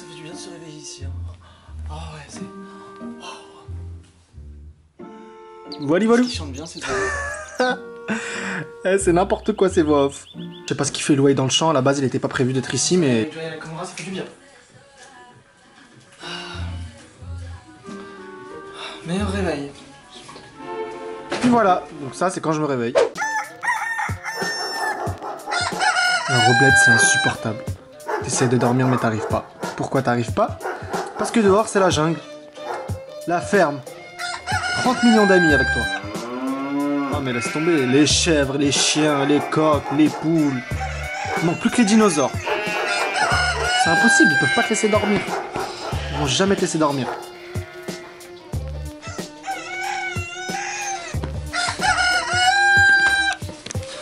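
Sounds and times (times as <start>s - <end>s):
rooster crowing: 6.8s - 7.7s, 23.2s - 27.4s, 34.1s - 38.1s, 38.8s - 46.3s, 47.0s - 53.4s
background music with a beat: 23.1s - 39.2s, 39.8s - 54.0s.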